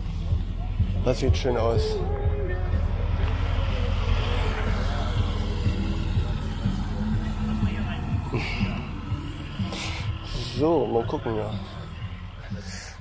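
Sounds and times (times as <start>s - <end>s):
car engine running: 0.0s - 13.0s
faint voices: 0.0s - 13.0s.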